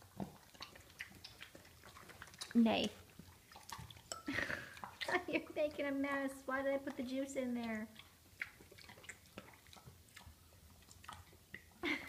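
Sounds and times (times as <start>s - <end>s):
pig chewing: 0.0s - 11.8s.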